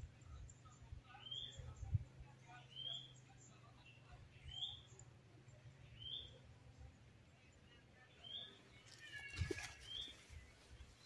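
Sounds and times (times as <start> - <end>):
bird chirping: 0.0 - 11.0.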